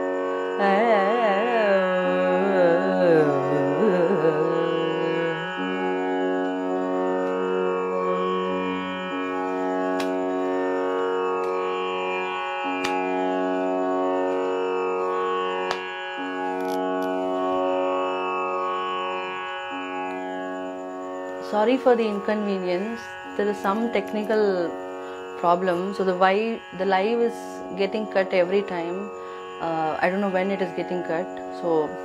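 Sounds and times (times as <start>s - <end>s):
tanpura drone: 0.0s - 32.0s.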